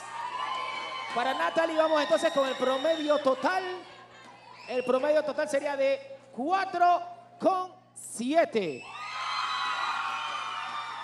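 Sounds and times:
audience cheering and whooping: 0.0 - 5.2, 8.8 - 11.0.

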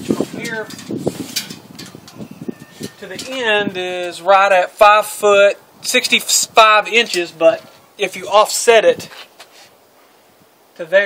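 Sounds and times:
low rustle: 0.0 - 3.5.

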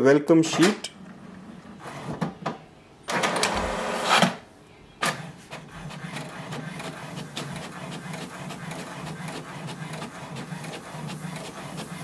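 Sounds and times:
inkjet printer humming and clicking: 5.0 - 12.0.

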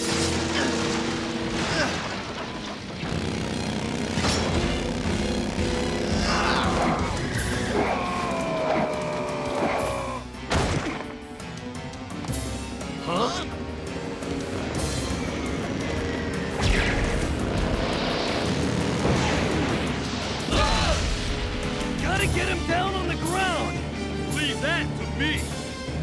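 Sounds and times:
background music: 0.0 - 26.0
energy blaster zaps: 16.6 - 21.5.

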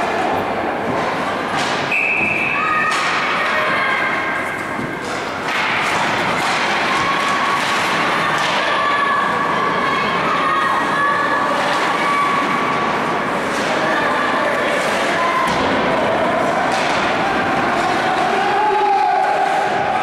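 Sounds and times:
hockey sticks and puck knocking: 0.8 - 9.2, 11.5 - 20.0
people shouting: 5.8 - 20.0.

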